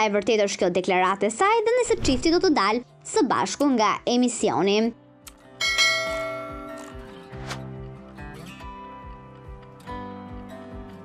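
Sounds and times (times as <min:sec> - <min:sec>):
bell chime ringing: 0:05.6 - 0:06.8.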